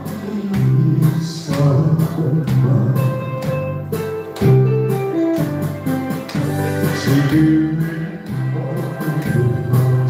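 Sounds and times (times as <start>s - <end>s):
instrumental karaoke backing music: 0.0s - 10.0s.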